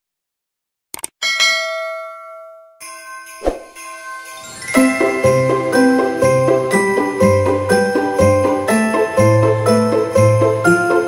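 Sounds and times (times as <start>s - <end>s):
bright bell chime: 1.2s - 11.0s
music: 2.8s - 11.0s.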